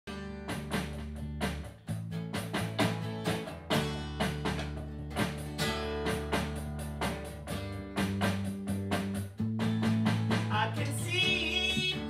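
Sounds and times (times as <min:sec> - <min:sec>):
acoustic guitar strumming: 0:00.1 - 0:12.0
electric bass line: 0:00.1 - 0:12.0.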